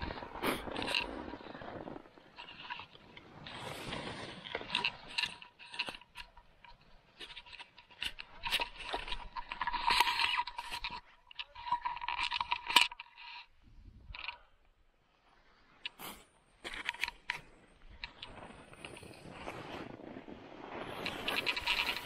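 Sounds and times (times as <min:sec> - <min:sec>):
skis scraping over snow: 0:00.0 - 0:05.5, 0:17.4 - 0:22.0
camera pole clicks and rattles: 0:04.7 - 0:13.3.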